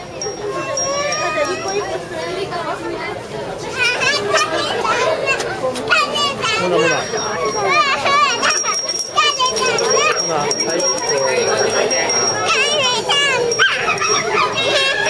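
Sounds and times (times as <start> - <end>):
children chattering and squealing: 0.0 - 15.0.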